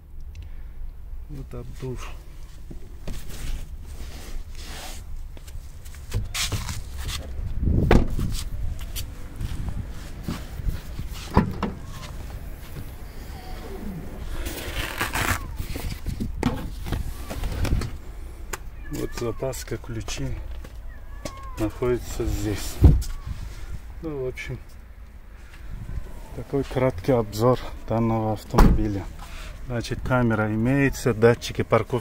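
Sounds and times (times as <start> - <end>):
heavy thump: 7.8 - 8.2, 11.3 - 12.0, 28.6 - 29.0
car boot knocks and clicks: 7.9 - 8.2, 11.3 - 11.9, 16.4 - 17.0
low rumble: 25.0 - 30.2.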